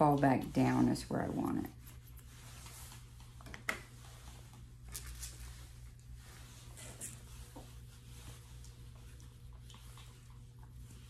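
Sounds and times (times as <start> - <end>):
grooming tools ticks and rustles: 0.0 - 11.0.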